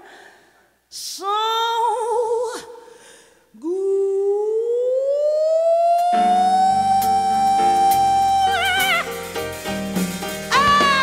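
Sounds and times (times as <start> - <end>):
woman singing a long held note: 3.6 - 9.1
band chords and bass: 6.2 - 11.0.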